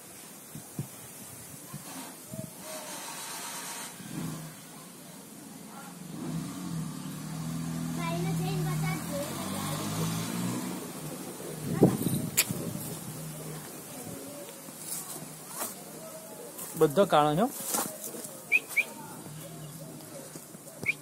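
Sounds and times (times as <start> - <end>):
faint voices: 0.0 - 21.0
vehicle engine humming: 3.4 - 21.0.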